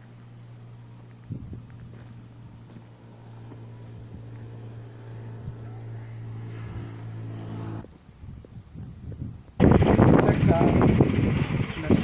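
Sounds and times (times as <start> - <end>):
motor humming: 0.0 - 8.0.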